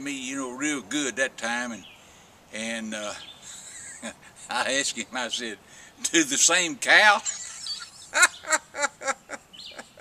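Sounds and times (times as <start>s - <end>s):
man laughing: 3.4s - 4.6s, 7.1s - 10.0s.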